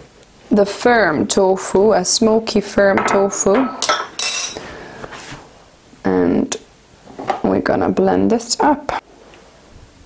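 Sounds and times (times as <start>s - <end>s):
kitchenware clink: 3.0s - 4.7s.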